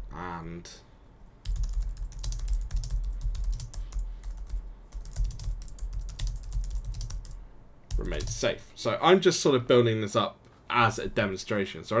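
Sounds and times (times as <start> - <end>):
typing on keyboard: 1.4 - 8.4.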